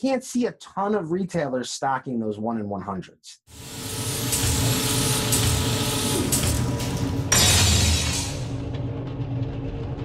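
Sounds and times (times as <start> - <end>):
whirring clattering machinery: 3.6 - 10.0
low rumble: 7.8 - 10.0.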